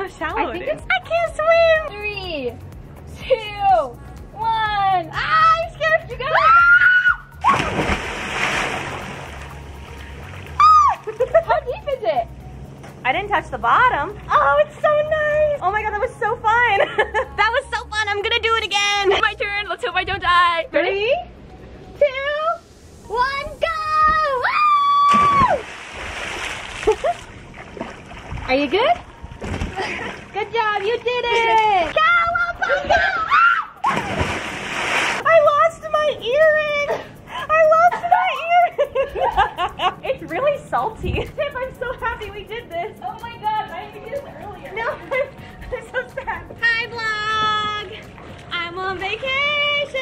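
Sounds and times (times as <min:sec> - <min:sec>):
water churning: 0:07.4 - 0:11.2, 0:25.1 - 0:32.0, 0:33.8 - 0:35.3
person whooping: 0:10.6 - 0:11.0.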